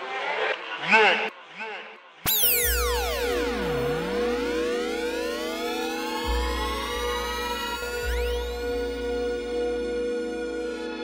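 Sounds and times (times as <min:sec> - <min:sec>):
held synth note: 0:02.3 - 0:11.0
synthesizer pitch sweep: 0:02.3 - 0:11.0.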